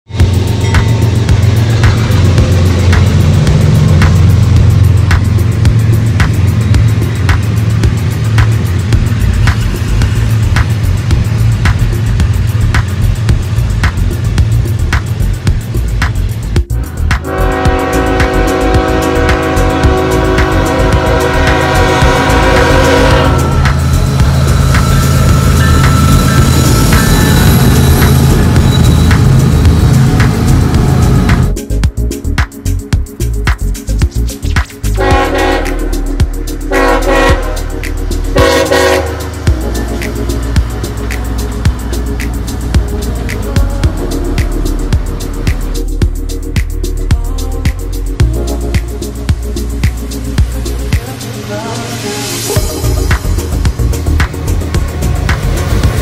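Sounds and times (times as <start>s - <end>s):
freight train rumbling past: 0.1s - 56.0s
locomotive horn blast: 16.8s - 31.5s, 35.0s - 36.1s, 36.7s - 39.5s.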